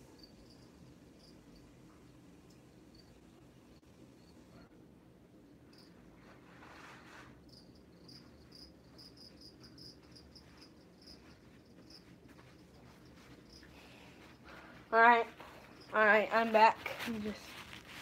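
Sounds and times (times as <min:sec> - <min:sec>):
cricket chirping: 0:00.0 - 0:04.7, 0:05.4 - 0:06.1, 0:07.5 - 0:14.6, 0:15.4 - 0:16.0.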